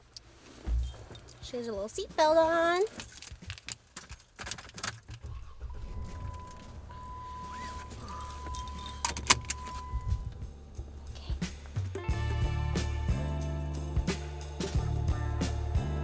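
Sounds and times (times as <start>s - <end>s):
keys jangling and clicking: 0.7s - 1.9s, 2.8s - 5.4s, 7.5s - 10.3s
low engine hum: 5.2s - 13.1s.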